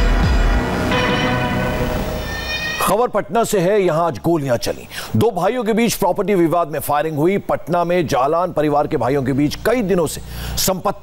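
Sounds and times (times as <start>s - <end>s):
news theme music: 0.0s - 3.3s.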